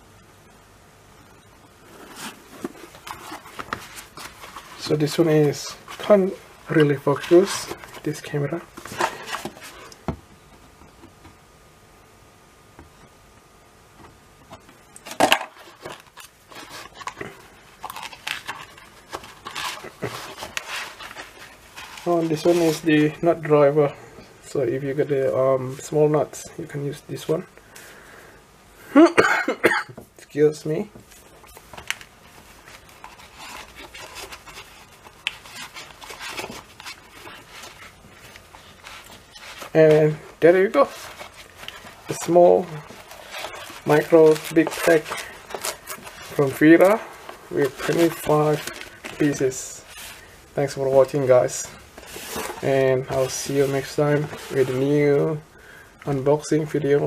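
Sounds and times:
fabric pouch rustle: 1.8 - 9.9, 15.2 - 23.2, 31.2 - 55.3
gloved hands rubbing cloth: 16.5 - 23.4, 31.1 - 55.2.

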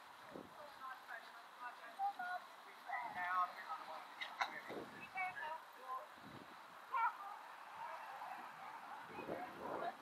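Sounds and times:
faint outdoor background noise: 0.0 - 10.0.

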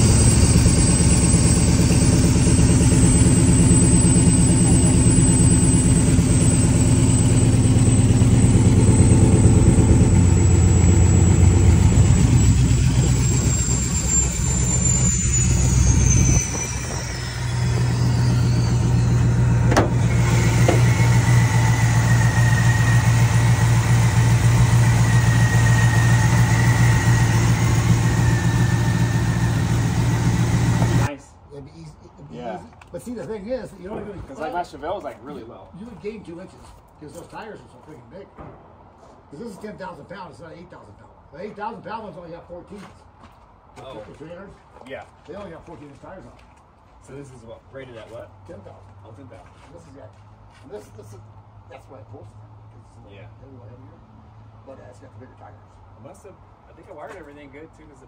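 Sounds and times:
high whine sliding down: 0.0 - 31.1
steady higher tone: 0.0 - 31.1
supercharged engine idling: 0.0 - 31.1.

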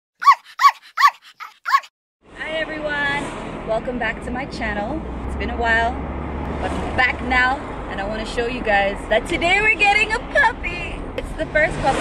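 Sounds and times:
dog barking: 0.2 - 1.9.

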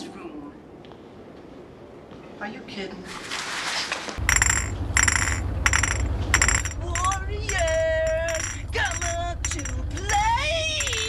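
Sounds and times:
glass bottles clinking: 4.2 - 11.0
low steady hum: 4.2 - 11.0.

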